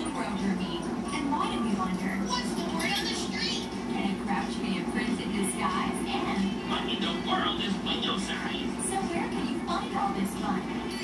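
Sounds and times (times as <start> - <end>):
muffled television voices: 0.0 - 11.0
steady low hum: 0.0 - 11.0.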